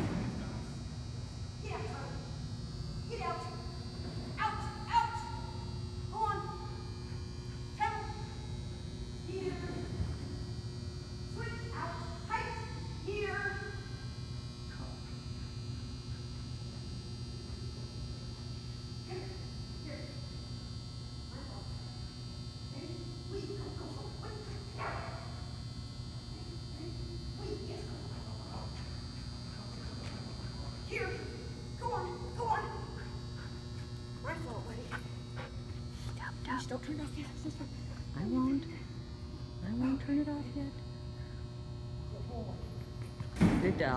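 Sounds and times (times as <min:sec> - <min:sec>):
low steady hum: 0:00.0 - 0:43.9
dog barking: 0:24.8 - 0:25.4.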